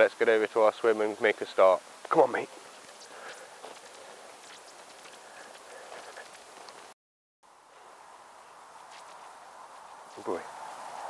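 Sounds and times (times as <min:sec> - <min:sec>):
steady hiss: 0:00.0 - 0:06.9, 0:07.5 - 0:11.0
light scattered ticks: 0:02.0 - 0:06.9.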